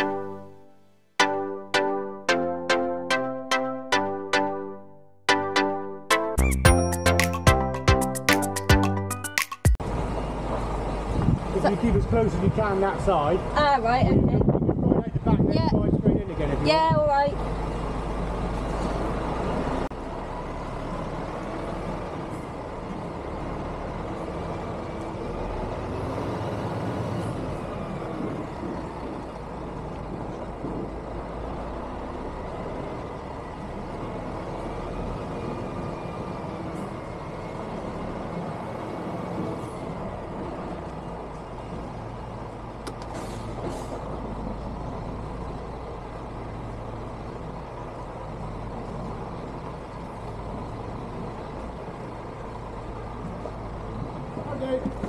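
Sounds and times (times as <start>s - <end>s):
diesel engine at low revs: 9.8s - 55.0s.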